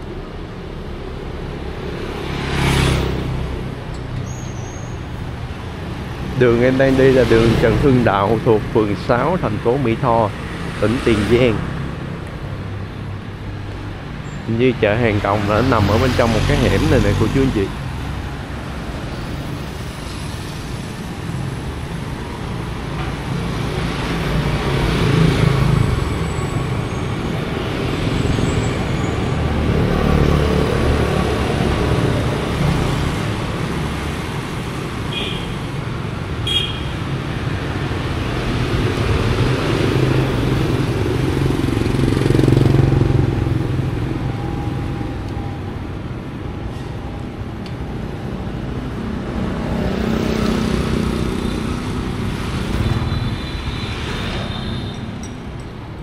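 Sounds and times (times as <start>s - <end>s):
motorbikes riding past: 1.4s - 3.9s, 37.3s - 45.4s.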